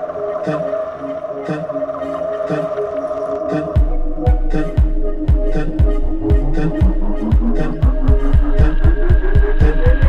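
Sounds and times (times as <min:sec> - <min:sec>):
sustained synth tone: 0:00.0 - 0:10.0
light electronic beat: 0:03.4 - 0:10.0
heavy bass kick drum: 0:03.8 - 0:10.0.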